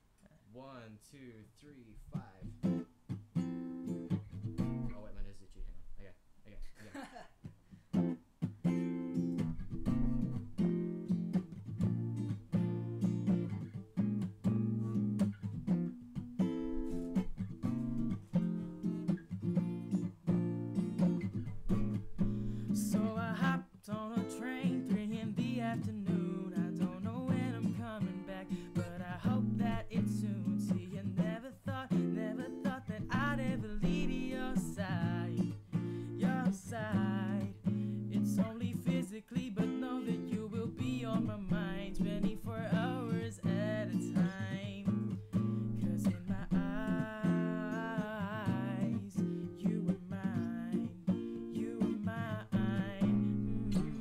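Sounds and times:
acoustic guitar strumming: 2.1s - 5.3s, 7.9s - 54.0s
wordless voice singing: 22.7s - 54.0s.

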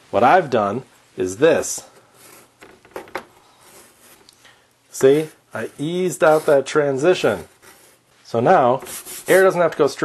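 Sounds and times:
chalk scratching on chalkboard: 2.2s - 2.6s, 3.6s - 4.3s, 5.0s - 8.0s, 8.8s - 9.6s.

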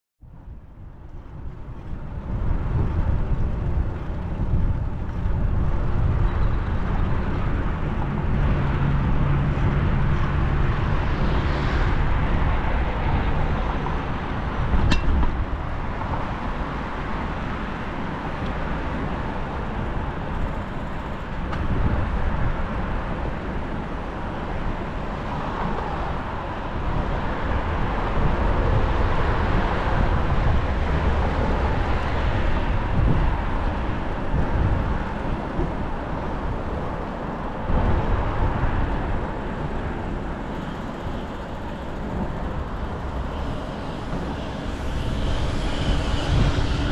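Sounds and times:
road traffic: 0.2s - 46.9s
wind noise on microphone: 0.2s - 46.9s.

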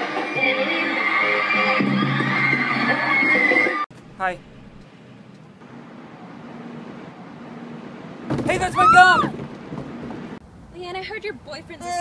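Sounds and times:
faint street background: 3.9s - 12.0s
woman speaking: 10.8s - 12.0s.

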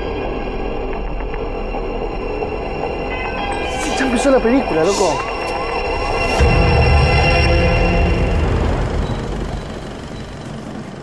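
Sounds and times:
low dark rumbling drone: 0.0s - 11.0s.

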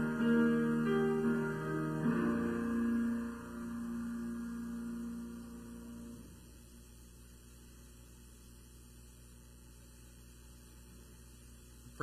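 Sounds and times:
piano chord: 0.0s - 6.6s
faint electrical hum: 0.0s - 12.0s.

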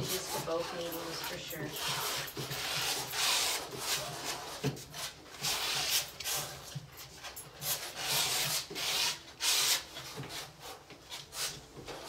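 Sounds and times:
palette knife scraping paint: 0.0s - 12.0s.

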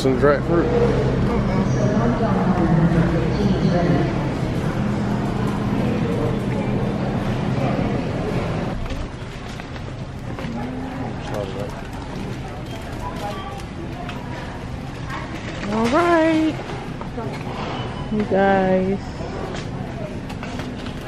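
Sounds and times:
steady low hum: 0.0s - 11.2s
murmur of shoppers' voices: 0.0s - 21.0s.

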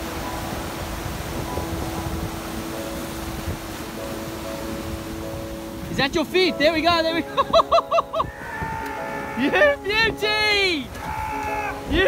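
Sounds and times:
faint music of held notes: 0.0s - 12.0s
surf washing over rocks: 0.0s - 12.0s
wind on microphone: 0.0s - 12.0s.

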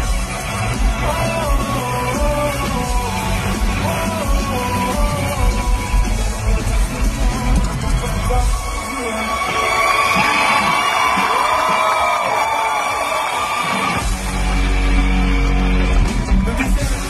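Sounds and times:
live band music: 0.0s - 11.9s, 13.6s - 17.0s
audience shouting and cheering: 0.0s - 17.0s.

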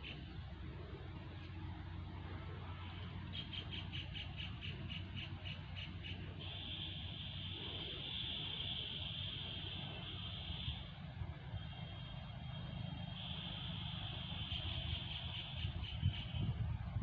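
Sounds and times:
steady high-pitched drone: 0.0s - 16.9s
wind buffeting microphone: 15.4s - 17.0s.

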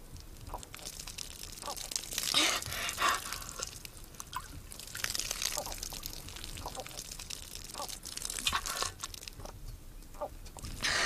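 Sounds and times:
water pouring and splashing: 0.0s - 9.6s, 10.5s - 11.0s
person drinking from hands: 0.6s - 9.3s.

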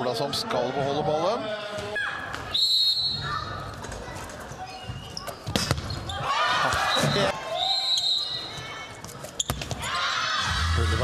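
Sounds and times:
handball bouncing on hard court: 4.9s - 7.2s, 9.0s - 9.9s.

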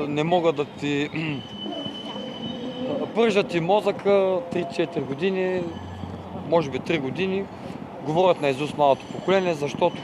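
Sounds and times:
street noise: 0.0s - 10.0s
steady high-pitched squeal: 0.1s - 7.6s, 8.3s - 10.0s.

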